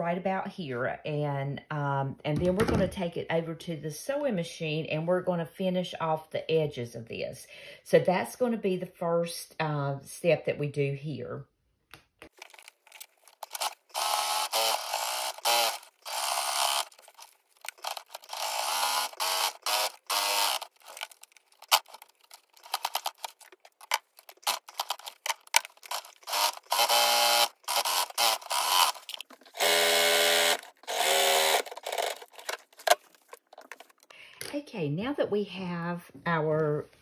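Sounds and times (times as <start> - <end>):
sewing machine stitching: 13.4 - 21.1, 24.4 - 33.0.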